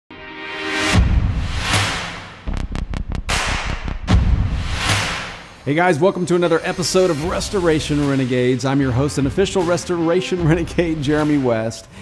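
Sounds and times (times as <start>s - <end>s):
whoosh: 0.9s - 8.3s
deep bass: 1.0s - 5.7s, 6.5s - 11.4s.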